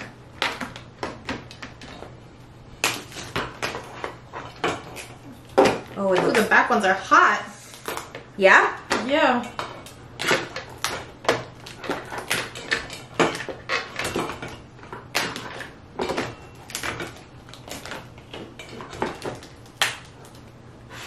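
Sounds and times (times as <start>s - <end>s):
crab shells cracking: 9.6s - 14.1s, 16.6s - 20.6s.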